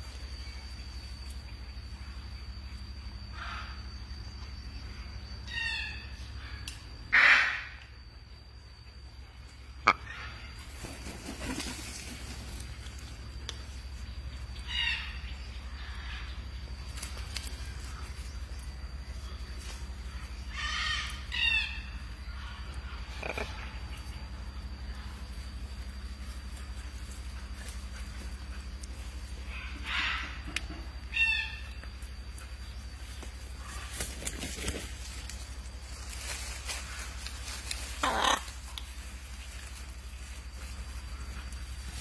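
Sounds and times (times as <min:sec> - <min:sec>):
low steady hum: 0:00.0 - 0:42.0
macaw harsh call: 0:07.1 - 0:07.8, 0:29.5 - 0:31.8, 0:37.6 - 0:38.9
macaw squawking: 0:37.8 - 0:38.8.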